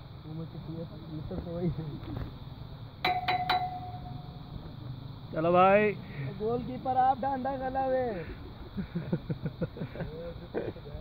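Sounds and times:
chime strikes and ringing tone: 0:03.0 - 0:04.5.

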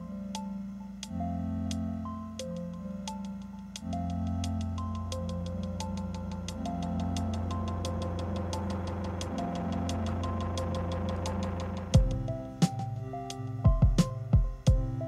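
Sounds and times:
electronic music: 0:00.0 - 0:15.0.

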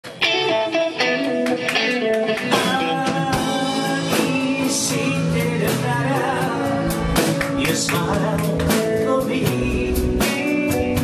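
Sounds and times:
live band playing rock ballad: 0:00.0 - 0:11.0.

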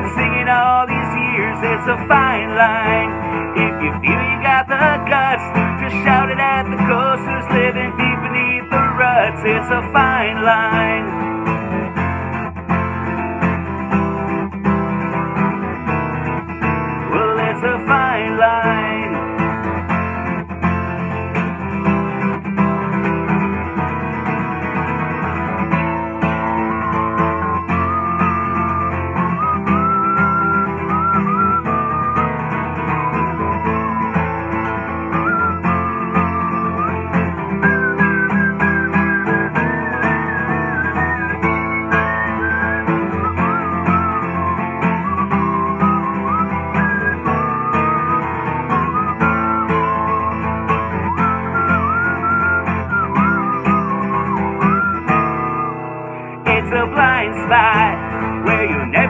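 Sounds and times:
acoustic guitar strumming: 0:00.0 - 0:59.0
man whistling a melody: 0:00.0 - 0:59.0.

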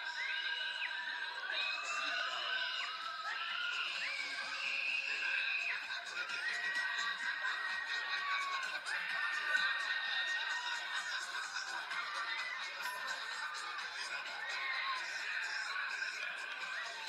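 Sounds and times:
people screaming: 0:00.0 - 0:17.0.

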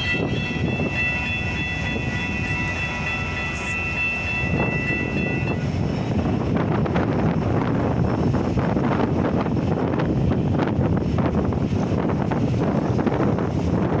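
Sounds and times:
wind buffeting microphone: 0:00.0 - 0:14.0.

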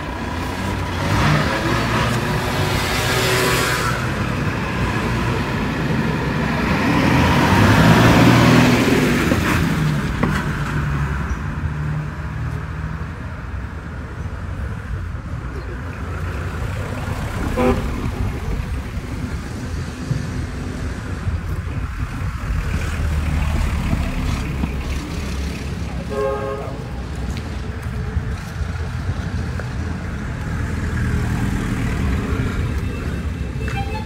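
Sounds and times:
low traffic rumble: 0:00.0 - 0:34.0
car horn beeping: 0:17.5 - 0:18.3, 0:26.1 - 0:26.8, 0:32.8 - 0:34.0.

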